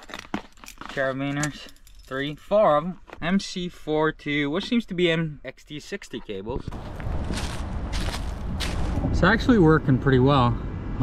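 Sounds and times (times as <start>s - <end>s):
steady low rumble: 6.6s - 11.0s
footsteps on dry leaves: 6.7s - 9.2s.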